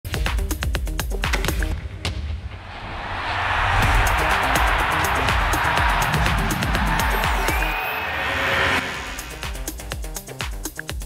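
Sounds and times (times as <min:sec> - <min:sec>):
rising whoosh: 0:02.5 - 0:10.0
electronic music with low beat: 0:03.8 - 0:08.1, 0:08.9 - 0:11.0.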